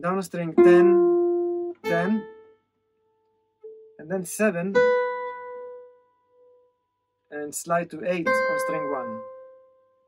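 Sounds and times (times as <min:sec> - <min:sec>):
acoustic guitar note ringing: 0:00.5 - 0:02.6.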